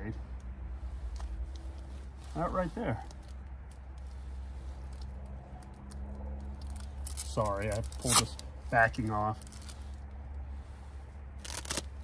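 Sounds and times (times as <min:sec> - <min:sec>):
hook-and-loop crackly rustle: 0:01.1 - 0:10.1, 0:11.4 - 0:11.9.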